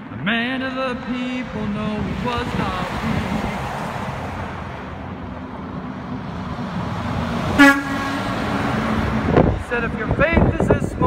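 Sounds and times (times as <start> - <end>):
road traffic noise: 0.0 - 11.0
vehicle horn toot: 7.6 - 8.4.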